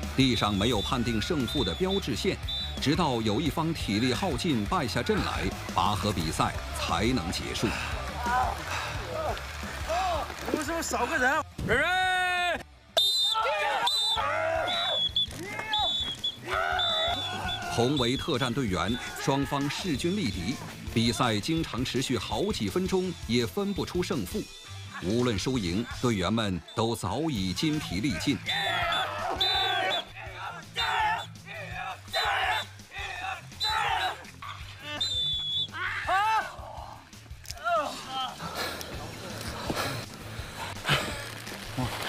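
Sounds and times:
background music: 0.0s - 42.0s
high whistle blasts: 0.4s - 2.9s, 13.0s - 18.3s, 28.8s - 30.1s, 34.9s - 35.8s
men shouting and grunting: 4.0s - 10.5s, 13.3s - 18.0s, 28.1s - 39.8s.

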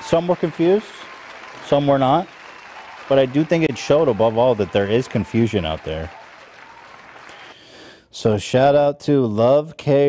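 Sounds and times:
applause: 0.0s - 7.7s.

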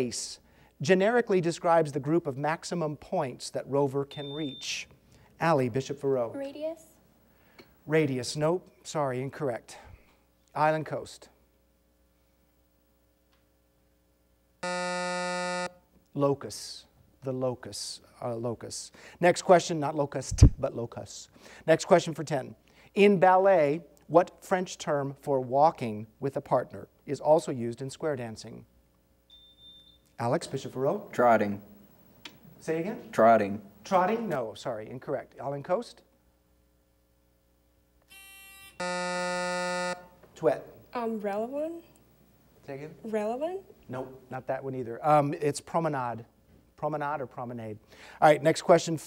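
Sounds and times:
electronic game-show buzzer: 14.6s - 15.8s, 38.1s - 40.2s.

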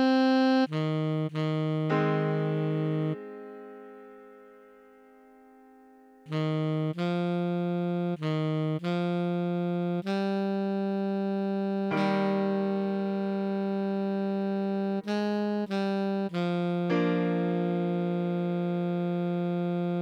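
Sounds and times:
alto saxophone melody: 0.0s - 20.0s.

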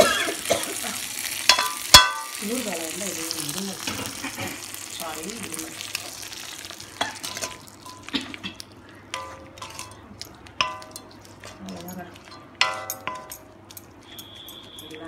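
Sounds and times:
food sizzling: 0.0s - 15.0s
spoon knocking ringing pan: 1.5s - 2.4s, 10.6s - 11.2s, 12.2s - 15.0s.

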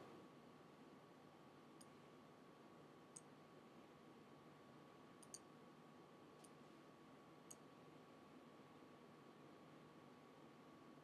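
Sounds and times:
faint steady hum: 0.0s - 11.0s
faint computer mouse clicks: 1.8s - 2.0s, 3.1s - 3.3s, 5.2s - 5.5s, 7.5s - 7.7s.

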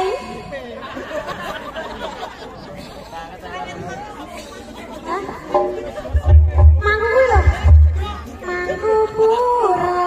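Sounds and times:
indistinct chatter: 0.0s - 10.0s
steady held note: 5.5s - 8.9s.

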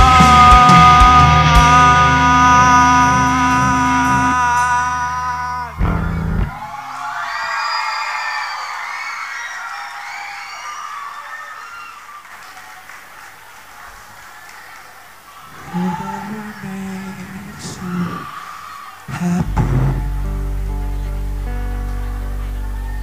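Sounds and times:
rock band chord: 0.0s - 6.5s, 19.5s - 23.0s
electric guitar ringing: 0.0s - 6.6s, 19.2s - 23.0s.

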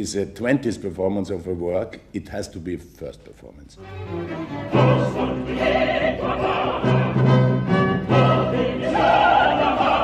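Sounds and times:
choir singing: 4.5s - 10.0s
operatic voice singing with vibrato: 4.6s - 10.0s.

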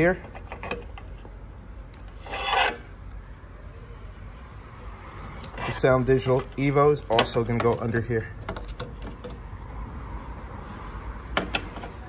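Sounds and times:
hand scraping metal casing: 0.0s - 1.3s, 2.0s - 2.9s, 5.4s - 9.4s.

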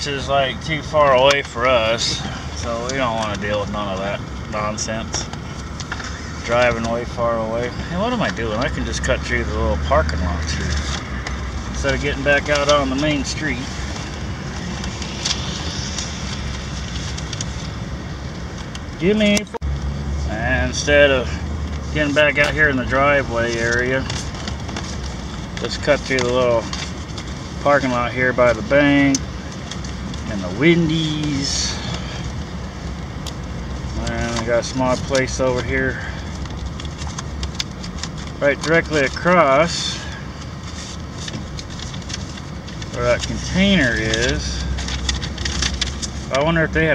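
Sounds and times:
engine and tyre noise: 0.0s - 46.9s.

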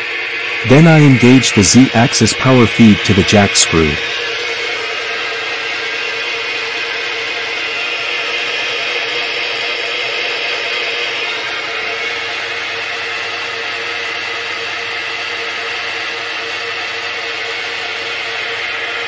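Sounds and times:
milling machine whirring: 0.0s - 7.1s
faint hum: 0.6s - 4.1s.

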